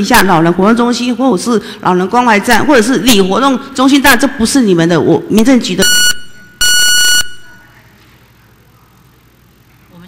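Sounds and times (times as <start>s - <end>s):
high electronic timer beeps: 5.8s - 7.6s.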